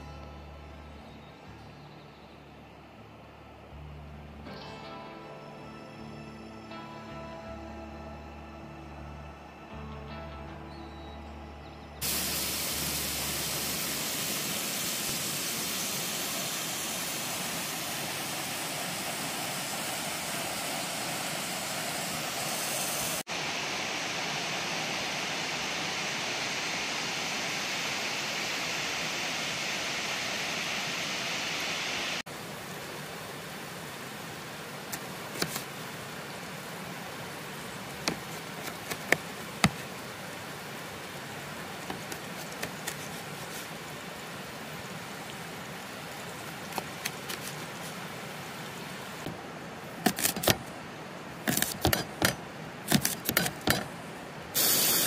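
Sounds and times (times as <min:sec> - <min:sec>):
flowing water hiss: 0:12.0 - 0:55.0
river rushing: 0:12.0 - 0:55.0.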